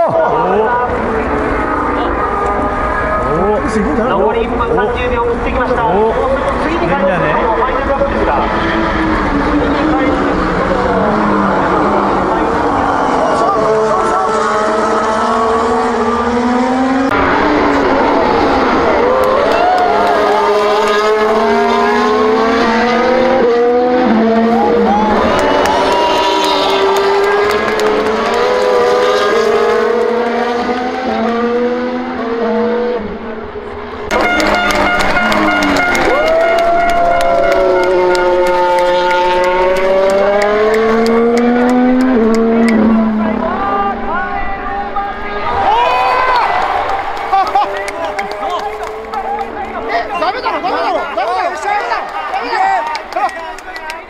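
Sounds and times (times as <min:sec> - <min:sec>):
race cars racing past: 0:00.0 - 0:54.0.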